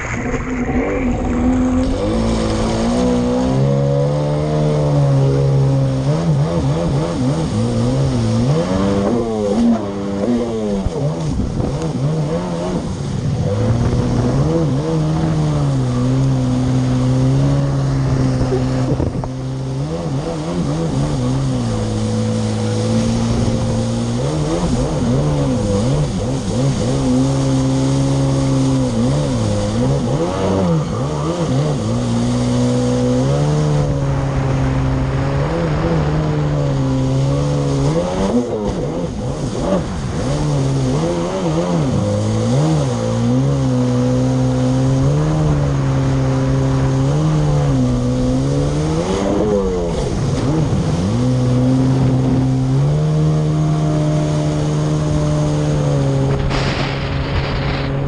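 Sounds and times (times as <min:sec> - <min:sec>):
jet ski engine running: 0:00.0 - 0:58.0.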